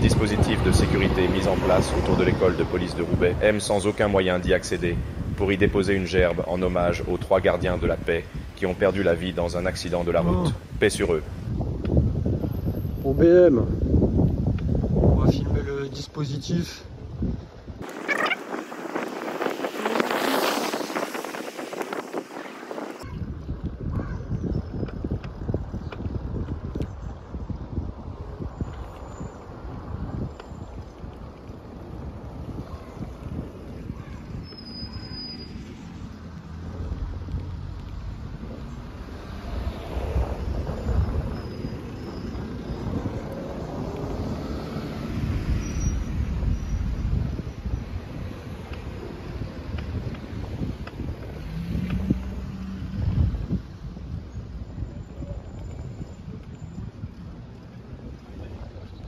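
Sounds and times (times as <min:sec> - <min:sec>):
wind buffeting microphone: 0:00.0 - 0:59.0
rushing noise: 0:17.8 - 0:23.0.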